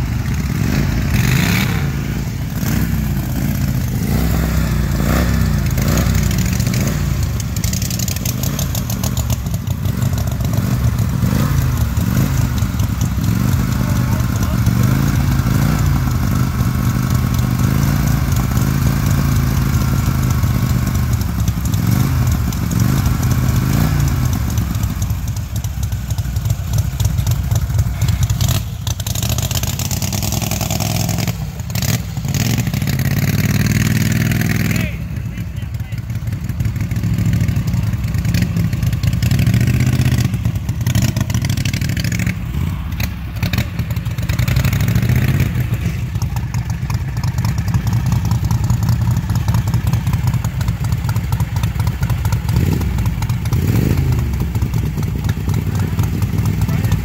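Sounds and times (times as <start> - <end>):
lawn tractor engine revving: 0.0 - 57.0.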